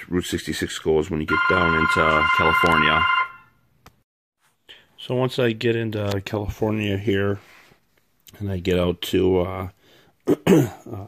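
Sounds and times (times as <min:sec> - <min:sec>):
man talking: 0:00.0 - 0:03.2, 0:05.0 - 0:07.4, 0:08.3 - 0:09.8
high electronic ringing tone: 0:01.3 - 0:03.6.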